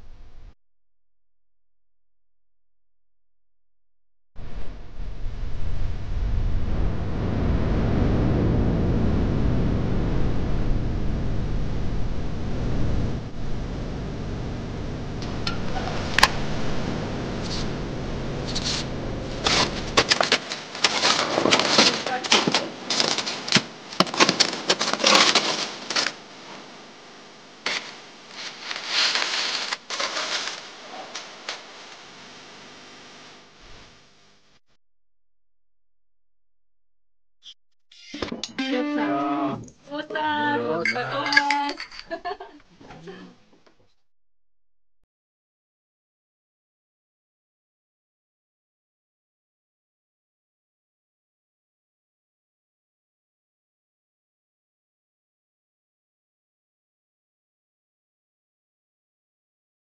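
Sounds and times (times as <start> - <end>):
wind blowing hard: 4.4 - 20.0
shovels scraping snow: 18.5 - 26.1, 27.7 - 31.2.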